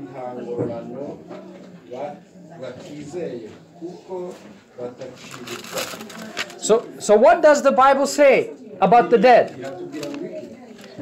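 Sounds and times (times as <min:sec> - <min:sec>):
man talking: 0:06.6 - 0:10.0.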